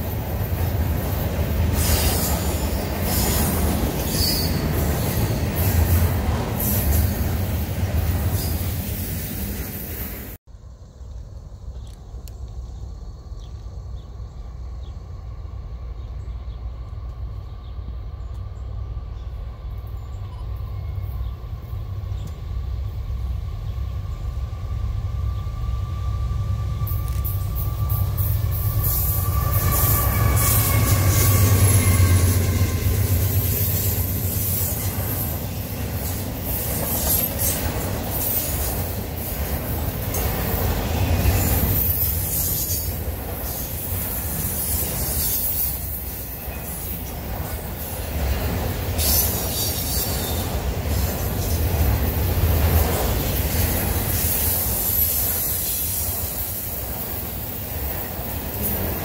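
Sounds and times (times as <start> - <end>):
steel wheels hissing on rail: 0.0 - 10.4, 20.9 - 59.0
freight train rumble: 0.0 - 59.0.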